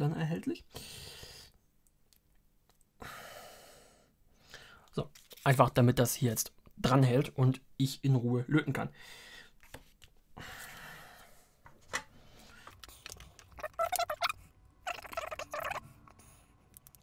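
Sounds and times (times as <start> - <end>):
circuit board handling rustle: 5.1 - 5.6.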